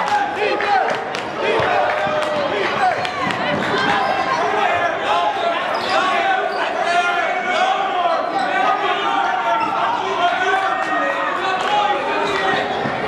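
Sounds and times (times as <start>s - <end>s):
crowd voices echoing: 0.0s - 13.0s.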